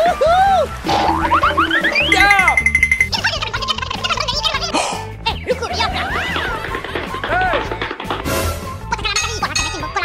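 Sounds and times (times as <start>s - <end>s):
background music with steady beat: 0.0s - 10.0s
cartoon boings: 0.9s - 3.2s
cartoon whistle-like pitch sweeps: 1.0s - 3.1s.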